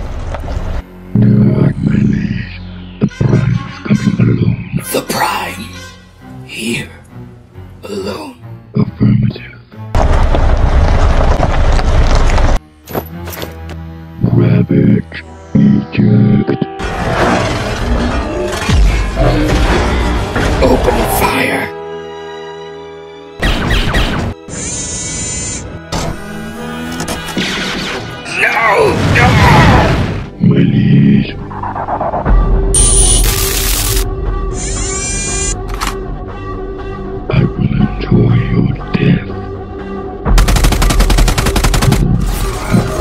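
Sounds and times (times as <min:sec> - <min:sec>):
background music chord: 0:00.8 - 0:10.0, 0:13.8 - 0:16.8, 0:34.0 - 0:40.5
rapid gunfire: 0:40.3 - 0:42.2.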